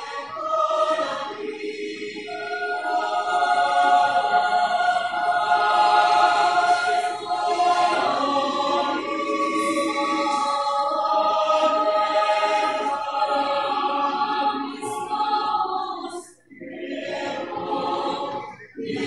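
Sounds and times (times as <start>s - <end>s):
choir singing held chords: 0.0s - 19.0s.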